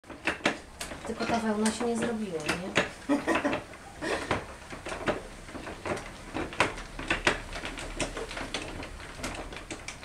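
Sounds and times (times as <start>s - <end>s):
spinning wheel knocking and clicking: 0.1s - 10.0s.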